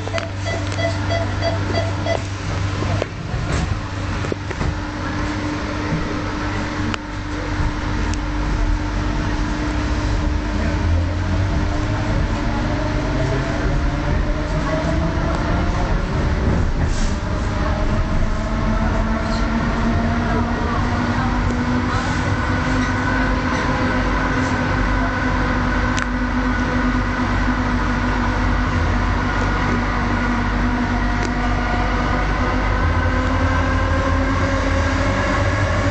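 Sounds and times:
wheels rumbling on track: 0.0s - 35.9s.

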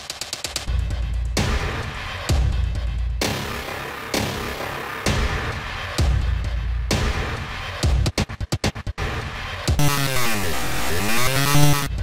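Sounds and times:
stuttering electronic music loop: 9.7s - 12.0s.

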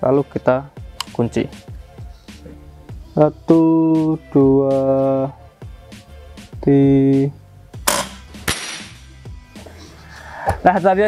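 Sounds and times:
air rifle firing: 7.8s - 9.0s.

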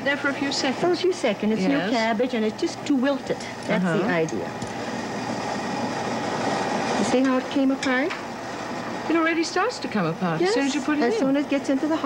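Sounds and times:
water boiling in a pot: 0.0s - 12.0s.

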